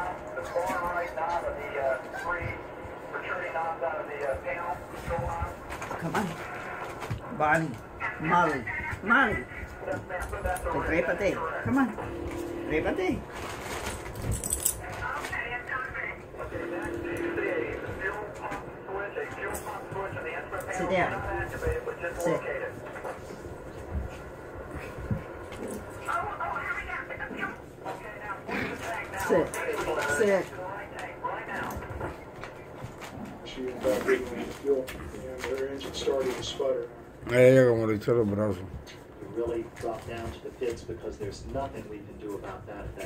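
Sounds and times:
television speech: 0.0 - 43.0
puppies playing and scuffling: 4.8 - 43.0.

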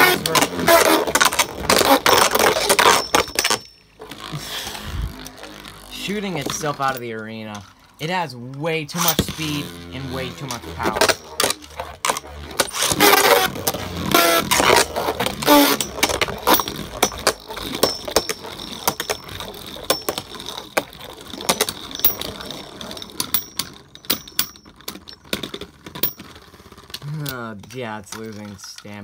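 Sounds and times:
high whir of spinning tops: 0.0 - 28.2.

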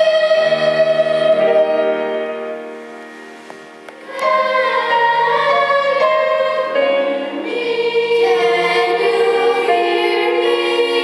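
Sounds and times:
children's choir singing: 0.0 - 2.8, 3.9 - 11.0.

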